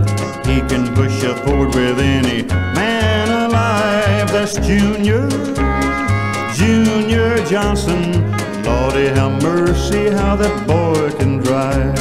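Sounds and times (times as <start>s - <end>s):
slide guitar: 0.0s - 12.0s
steady bass line: 0.0s - 12.0s.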